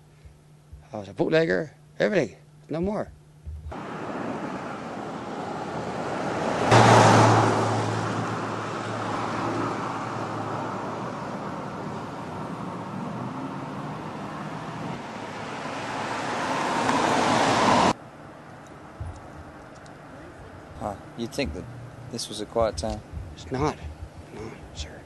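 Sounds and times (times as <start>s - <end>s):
low steady hum: 0.0s - 3.9s, 17.9s - 25.0s
vehicle passing by: 3.7s - 18.0s.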